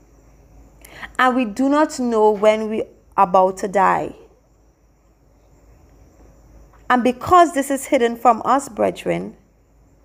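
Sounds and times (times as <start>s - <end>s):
insects chirring: 0.0s - 10.0s
woman speaking: 1.0s - 4.4s, 6.9s - 9.4s.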